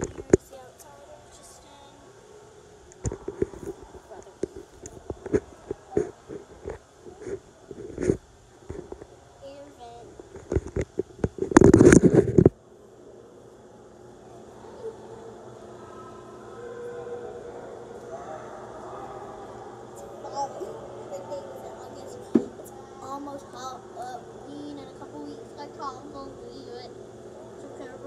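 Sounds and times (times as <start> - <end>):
low hum of indoor room: 0.0 - 28.0
faint distant voices: 12.6 - 28.0.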